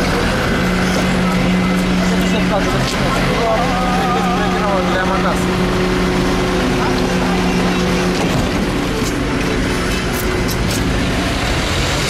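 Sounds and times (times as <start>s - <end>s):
truck engine idling: 0.0s - 12.0s.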